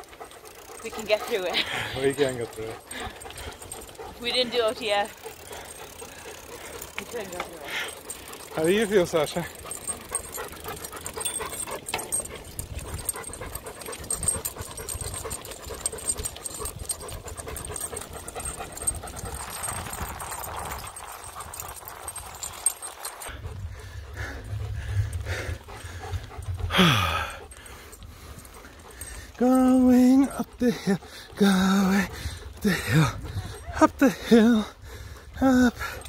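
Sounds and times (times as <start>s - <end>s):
bicycle tyre noise: 0.0s - 29.3s
dog panting hard: 0.0s - 36.0s
wind noise: 10.6s - 29.1s, 32.0s - 36.0s.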